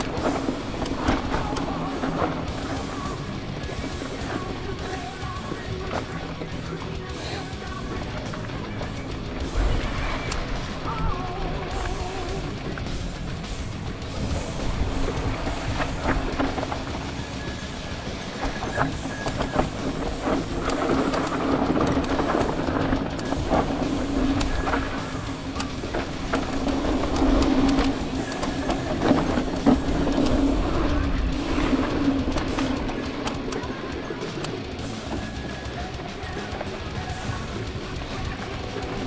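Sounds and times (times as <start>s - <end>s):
background guitar music: 0.0s - 39.0s
mountain bike rattling on dirt trail: 0.0s - 39.0s.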